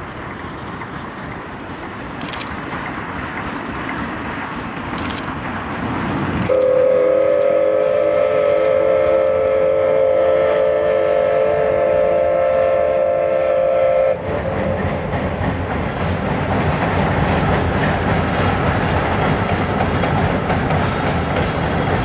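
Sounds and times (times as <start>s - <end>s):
train running on steel bridge: 0.0s - 22.0s
steam whistle blast: 6.5s - 14.3s.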